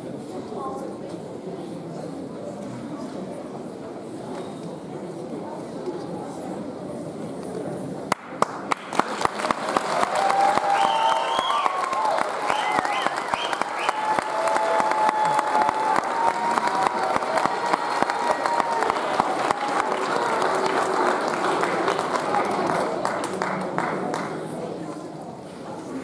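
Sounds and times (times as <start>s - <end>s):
audience applause: 8.1s - 24.6s
people calling and whistling: 10.7s - 14.1s.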